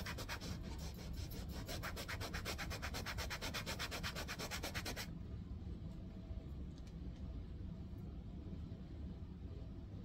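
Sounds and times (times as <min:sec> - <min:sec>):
paintbrush scrubbing on canvas: 0:00.0 - 0:05.1.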